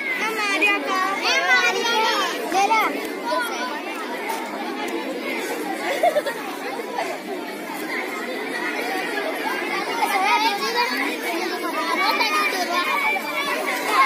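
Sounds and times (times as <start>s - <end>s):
children talking babble: 0.0s - 14.0s.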